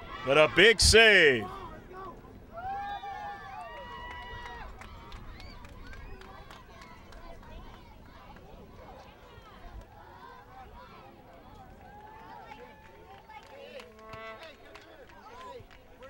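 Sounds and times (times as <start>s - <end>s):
distant shouting: 0.0s - 1.7s.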